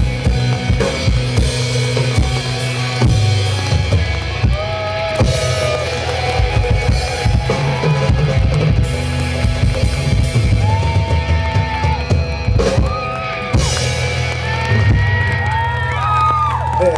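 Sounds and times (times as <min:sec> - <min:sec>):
pitch-bending held guitar notes: 0:00.0 - 0:16.8
live rock band: 0:00.0 - 0:16.9.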